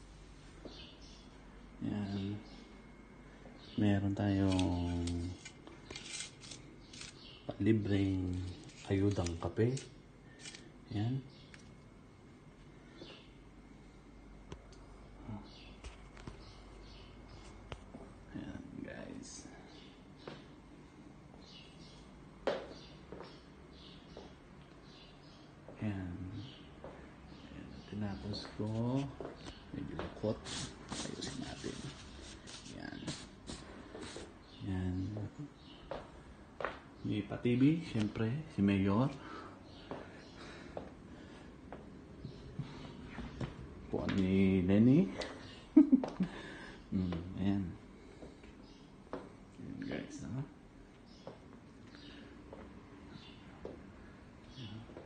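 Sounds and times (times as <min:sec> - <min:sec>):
man speaking: 0:01.8 - 0:02.6, 0:07.6 - 0:09.9, 0:27.5 - 0:33.3, 0:46.9 - 0:47.8, 0:49.6 - 0:50.6
soft rustling: 0:28.4 - 0:34.3.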